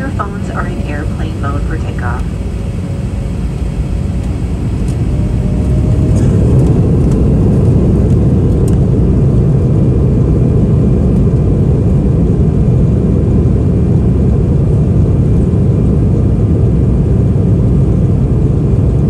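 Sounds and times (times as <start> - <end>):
airplane rolling on runway rumble: 0.0 - 19.0.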